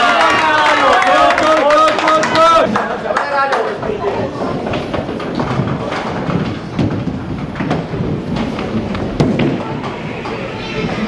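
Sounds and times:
bowling balls rolling rumble: 0.2s - 11.0s.

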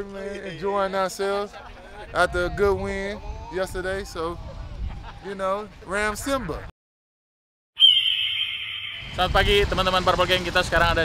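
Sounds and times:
ringing high tone sliding lower: 7.8s - 9.4s.

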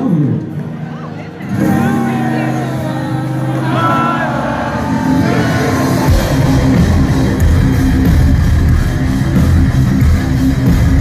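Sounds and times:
live metal band: 1.5s - 11.0s.

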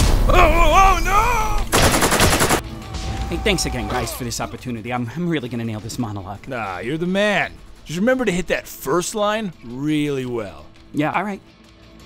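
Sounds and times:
automatic rifle fire: 1.7s - 2.6s.

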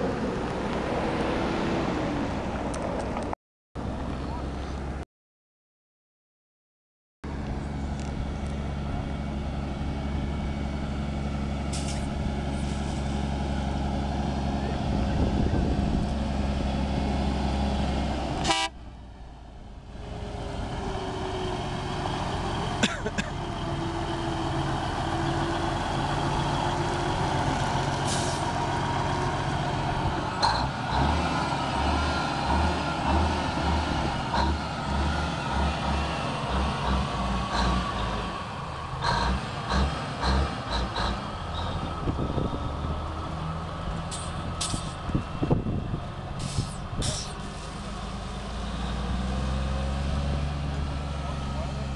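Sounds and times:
diesel truck engine running: 7.2s - 51.9s.

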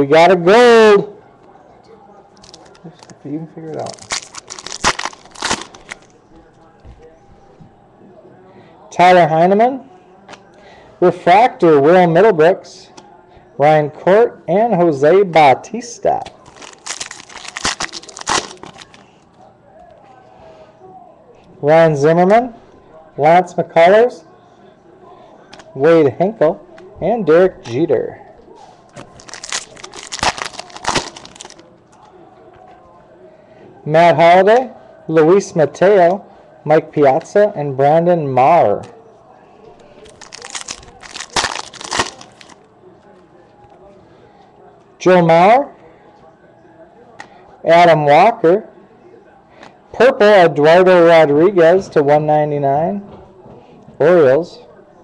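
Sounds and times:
foil wrapper crinkling: 3.8s - 6.1s, 16.4s - 19.0s, 29.0s - 31.6s, 40.0s - 42.6s.

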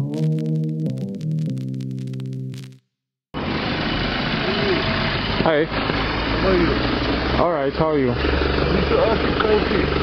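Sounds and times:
truck engine idling: 3.4s - 10.0s.

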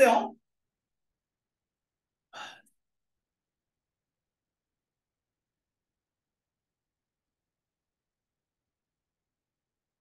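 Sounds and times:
person sighing: 2.3s - 2.8s.

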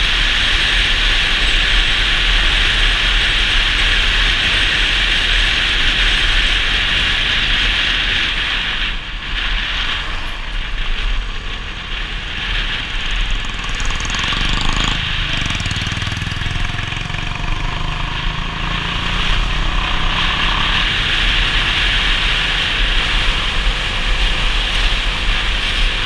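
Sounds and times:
motorcycle engine running: 0.0s - 26.0s
wind rushing over microphone: 0.0s - 26.0s.

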